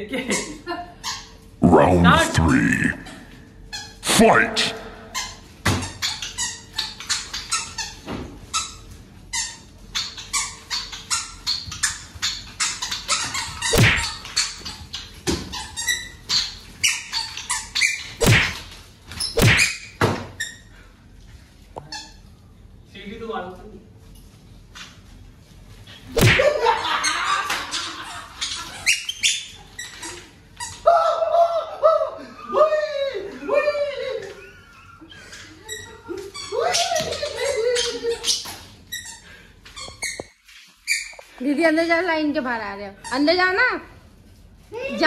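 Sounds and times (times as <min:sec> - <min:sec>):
people laughing: 0:26.4 - 0:28.6.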